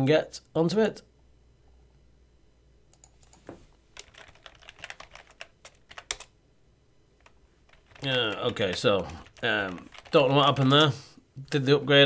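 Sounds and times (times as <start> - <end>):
typing on computer keyboard: 4.0 - 6.3, 7.2 - 10.9.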